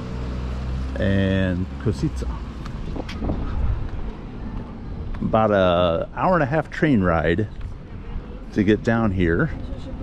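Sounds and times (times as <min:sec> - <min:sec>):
street background rumble: 0:00.0 - 0:10.0.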